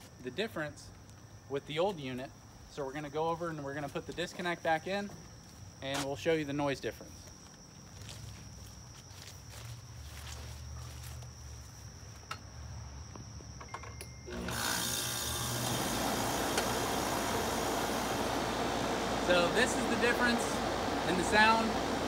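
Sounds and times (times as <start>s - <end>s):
air conditioner unit running: 14.0s - 22.0s.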